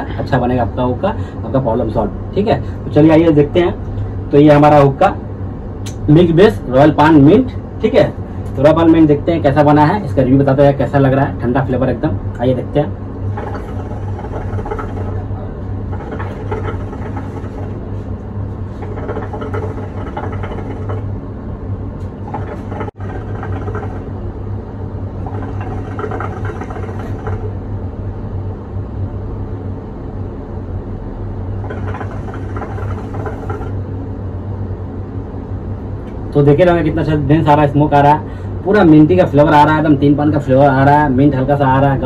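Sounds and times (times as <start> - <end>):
hookah bubbling: 13.1 - 21.3, 22.0 - 24.4, 25.1 - 27.7, 31.5 - 34.0.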